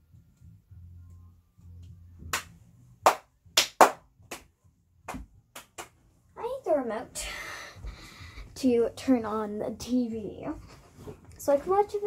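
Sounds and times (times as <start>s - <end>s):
sharp hand claps: 2.3s - 4.5s, 5.1s - 6.0s.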